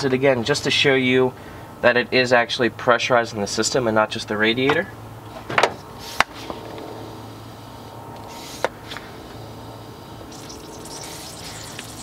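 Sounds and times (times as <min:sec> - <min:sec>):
crackly hiss of bubbling coolant: 0:07.0 - 0:12.0.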